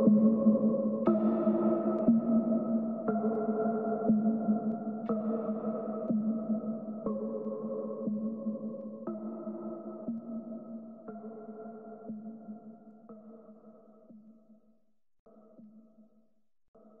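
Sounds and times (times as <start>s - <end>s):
music with sustained tones: 0.0s - 13.4s.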